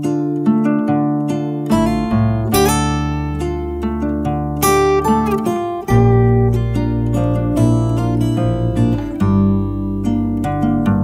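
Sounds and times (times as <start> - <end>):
acoustic guitar picking: 0.0 - 11.0
sustained bass line: 1.7 - 11.0.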